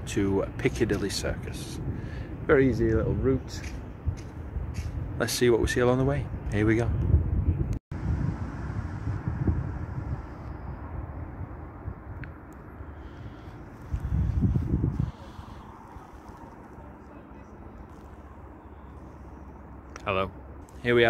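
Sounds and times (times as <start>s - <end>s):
low wind rumble: 0.0s - 21.0s.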